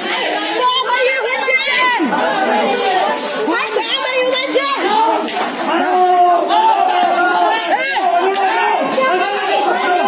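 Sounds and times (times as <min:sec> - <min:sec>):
people shouting and talking: 0:00.0 - 0:10.0.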